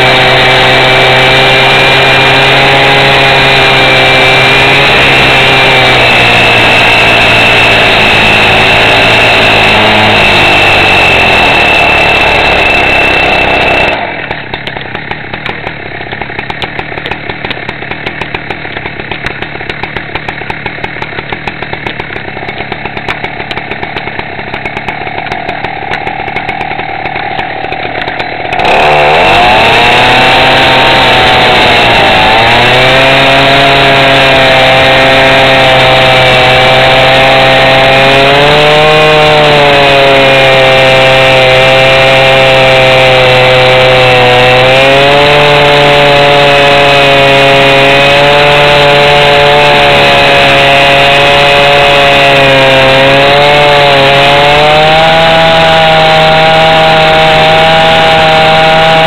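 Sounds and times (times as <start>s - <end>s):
disc cutter cutting steel: 0.0s - 14.3s, 25.2s - 59.0s.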